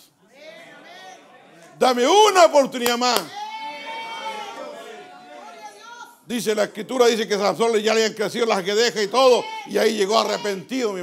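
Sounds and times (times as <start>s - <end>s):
murmuring voices: 0.2s - 2.4s, 3.3s - 6.0s
person preaching: 0.3s - 3.6s, 5.4s - 11.0s.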